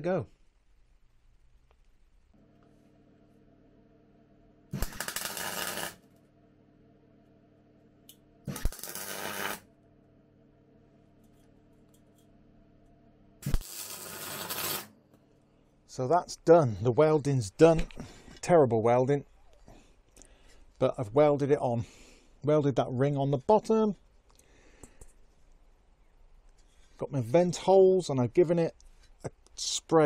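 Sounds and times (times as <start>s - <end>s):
arc welding crackle: 4.7s - 6.0s, 8.5s - 9.7s, 13.4s - 14.9s
welding arc strike click: 4.8s - 6.0s, 8.1s - 9.6s.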